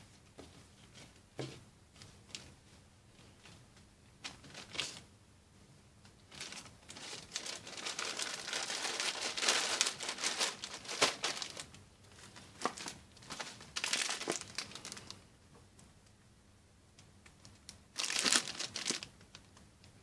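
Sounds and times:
plastic bags crinkling: 0:06.3 - 0:15.2, 0:17.5 - 0:19.5.

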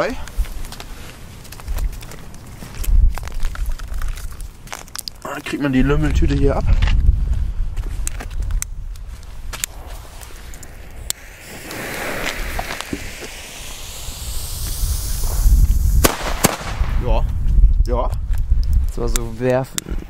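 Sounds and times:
firecracker fuse hissing: 0:09.6 - 0:17.0
firecracker bangs: 0:11.2 - 0:17.1.

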